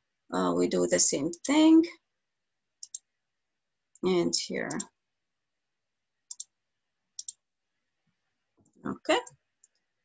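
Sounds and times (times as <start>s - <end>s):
computer mouse clicks: 2.8s - 3.1s, 4.7s - 5.0s, 6.3s - 6.6s, 7.2s - 7.4s, 8.6s - 9.9s.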